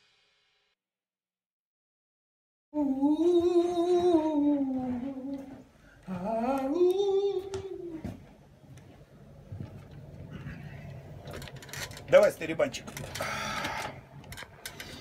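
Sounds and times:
person singing long wordless notes: 2.7s - 8.2s.

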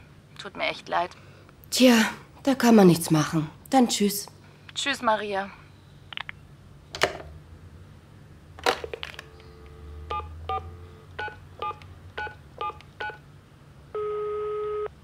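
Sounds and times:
dial tone: 14.0s - 14.9s.

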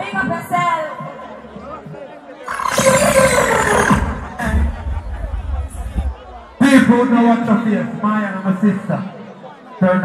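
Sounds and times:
noise of many voices: 0.0s - 10.0s.

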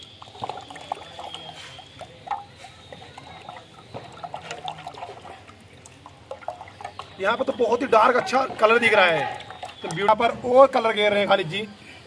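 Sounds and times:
liquid sloshing in a pot: 0.0s - 10.8s.

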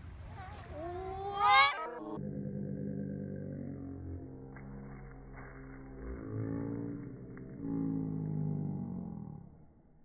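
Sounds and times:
child squealing: 0.4s - 2.0s
low slowed-down drone: 1.9s - 10.0s.

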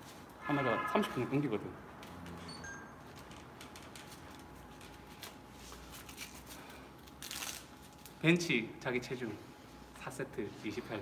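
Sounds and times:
cloth wrap rustling: 2.0s - 8.3s.

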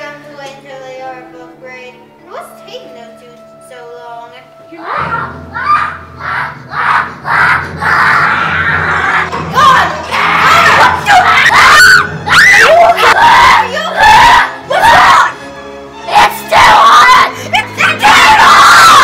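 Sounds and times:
background music: 0.0s - 19.0s
children screaming: 4.9s - 15.4s, 16.1s - 19.0s.

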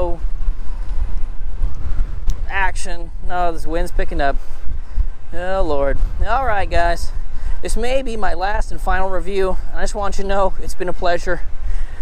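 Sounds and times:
gusty wind buffeting microphone: 0.0s - 12.0s.

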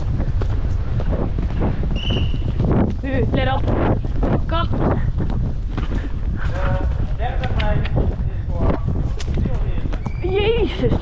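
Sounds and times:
hoofbeats thudding on turf: 0.0s - 11.0s
wind noise rumble: 0.0s - 11.0s.

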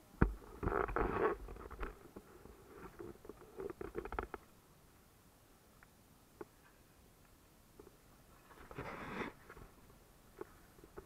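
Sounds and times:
muffled rubbing and rustling: 0.2s - 4.5s, 7.8s - 11.0s.

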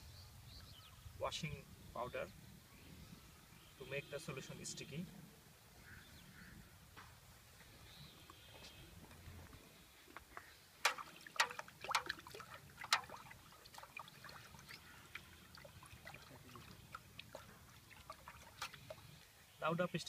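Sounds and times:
water sloshing in metal pot: 10.8s - 19.1s.

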